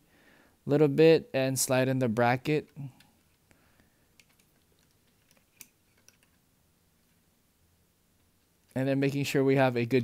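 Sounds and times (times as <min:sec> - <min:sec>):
faint clicks and taps: 0:02.6 - 0:06.4.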